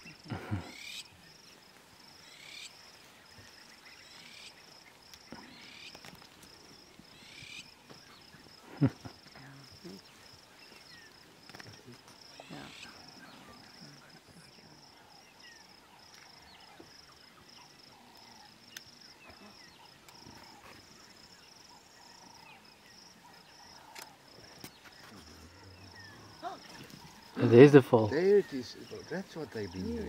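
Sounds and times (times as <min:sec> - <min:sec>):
insect chirping: 0:00.0 - 0:30.0.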